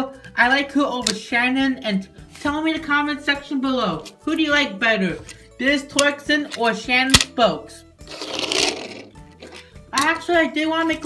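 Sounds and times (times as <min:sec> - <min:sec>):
toy car wheels whirring: 0:08.1 - 0:09.6.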